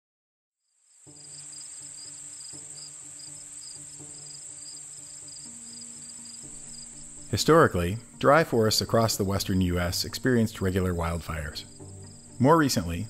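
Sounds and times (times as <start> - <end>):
insects chirring: 0.6 - 13.0
soft sustained music chords: 1.0 - 13.0.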